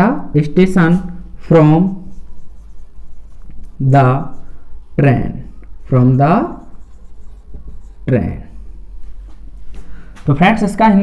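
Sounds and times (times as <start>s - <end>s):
marker writing on a whiteboard: 0.1s - 9.6s
man talking: 5.0s - 6.7s, 10.2s - 11.0s.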